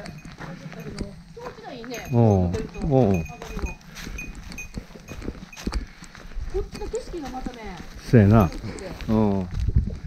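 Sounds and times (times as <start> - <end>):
person speaking: 0.0 - 3.9
footsteps on leaf-covered trail: 0.0 - 10.0.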